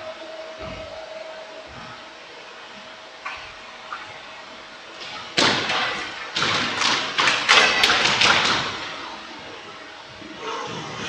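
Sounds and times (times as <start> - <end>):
squash ball striking rackets and walls: 5.0 - 9.0.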